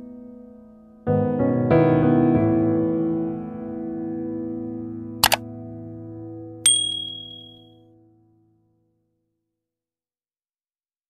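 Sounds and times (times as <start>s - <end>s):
soft piano music: 0.0s - 8.7s
bright bell ding: 6.7s - 7.6s.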